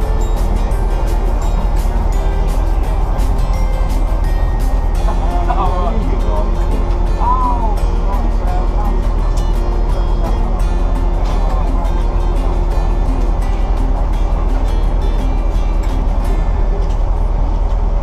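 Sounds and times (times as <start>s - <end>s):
background music with steady beat: 0.0s - 18.0s.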